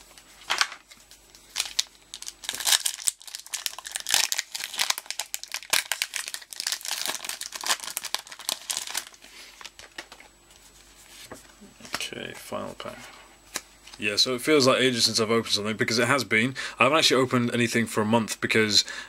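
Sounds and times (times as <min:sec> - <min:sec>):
foil wrapper crinkling and tearing: 0:00.0 - 0:10.2.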